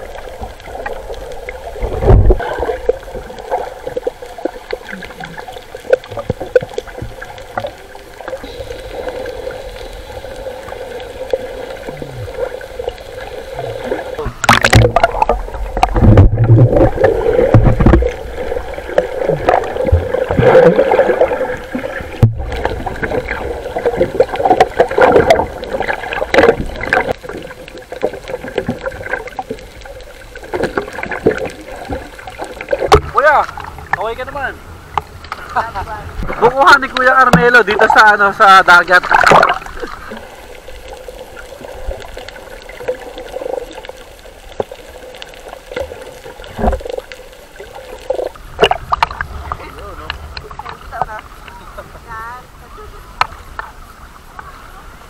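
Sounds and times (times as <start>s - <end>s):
muffled water sloshing: 0.0s - 55.0s
loud splash: 13.9s - 27.1s, 38.9s - 40.1s.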